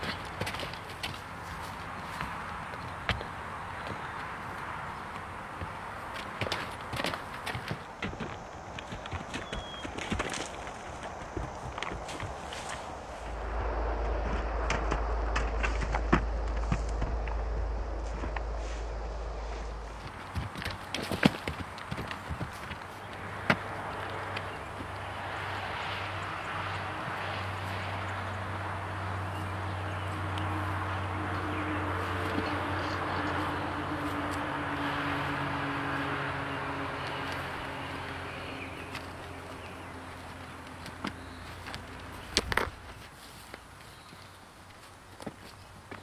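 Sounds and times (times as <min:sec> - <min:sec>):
horse hooves on dirt and rock: 0:00.0 - 0:13.2, 0:14.2 - 0:46.0
low rumble: 0:12.3 - 0:21.0.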